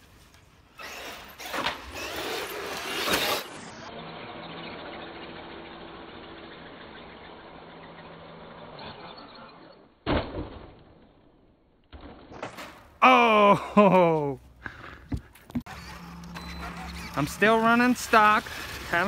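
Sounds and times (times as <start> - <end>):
electric toy truck motor: 0.7 - 9.9, 15.7 - 19.0
faint held tone: 15.7 - 17.6.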